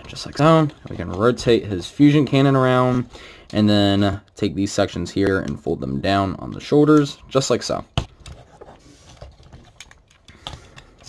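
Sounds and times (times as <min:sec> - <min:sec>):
plastic parts clicking and rubbing: 0:00.0 - 0:04.5, 0:06.3 - 0:11.0.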